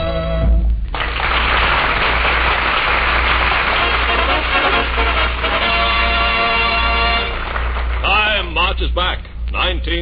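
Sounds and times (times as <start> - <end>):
music: 0.0 - 1.1, 3.3 - 8.9
low steady hum: 0.0 - 10.0
audience applauding: 0.9 - 9.0.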